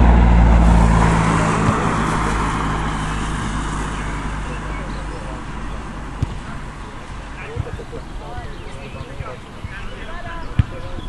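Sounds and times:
dull low thump: 0.0 - 3.6
distant voices calling out: 0.0 - 11.0.

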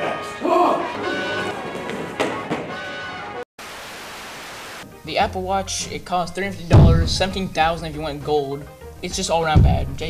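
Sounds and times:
background music: 0.0 - 3.4, 4.8 - 10.0
steady static hiss: 3.6 - 5.1.

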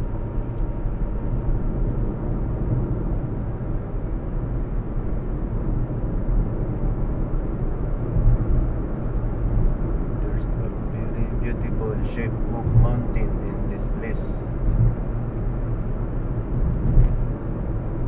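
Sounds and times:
car engine and tyres rumbling: 0.0 - 18.0
faint talking: 10.3 - 14.5.

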